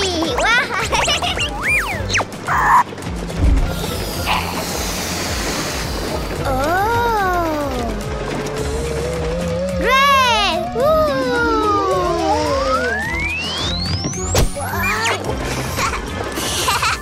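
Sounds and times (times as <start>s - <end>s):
cartoon background music: 0.0s - 17.0s
air hissing into balloon: 3.7s - 6.4s
rising and falling tone: 11.5s - 14.3s.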